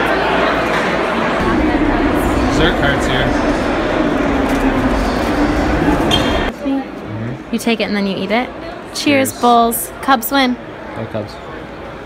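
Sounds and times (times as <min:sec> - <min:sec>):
indistinct crowd chatter: 0:00.0 - 0:12.0
constant low hum: 0:01.4 - 0:06.5.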